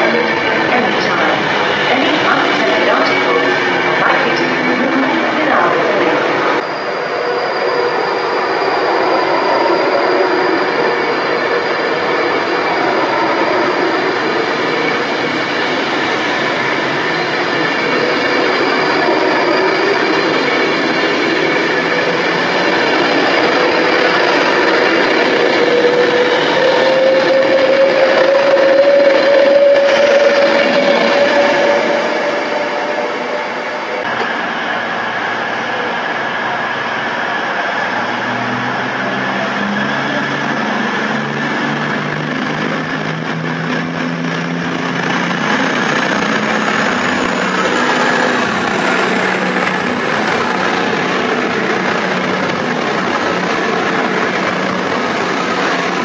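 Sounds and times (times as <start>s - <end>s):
electric train passing: 0.0s - 56.0s
train whine: 0.0s - 56.0s
wheels rumbling on rail: 0.0s - 56.0s.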